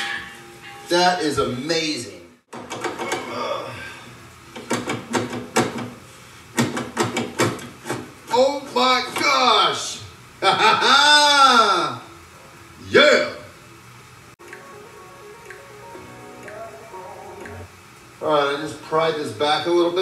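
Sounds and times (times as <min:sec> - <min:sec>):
sheet metal clicks and knocks: 0:04.6 - 0:05.9, 0:06.6 - 0:08.0
wordless vocal sounds: 0:16.3 - 0:17.8.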